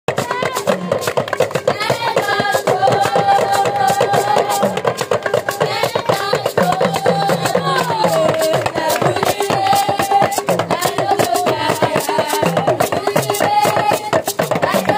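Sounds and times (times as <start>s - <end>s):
talking drums played with sticks: 0.1s - 14.9s.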